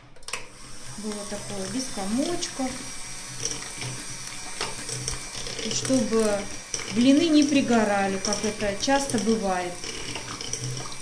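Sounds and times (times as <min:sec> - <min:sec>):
electric hand mixer humming: 0:00.0 - 0:11.0.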